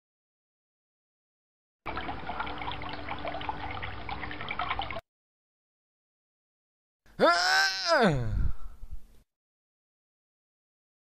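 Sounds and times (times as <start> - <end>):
water pouring and splashing: 1.9 - 5.0.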